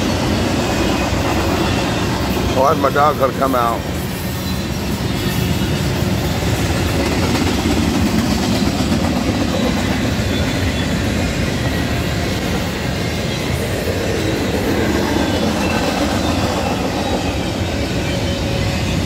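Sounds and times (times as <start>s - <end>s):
train wheels running on rails: 0.0s - 19.0s.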